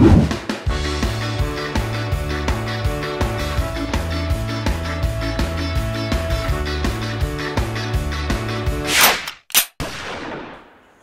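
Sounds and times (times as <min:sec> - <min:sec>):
background music: 0:00.0 - 0:09.1.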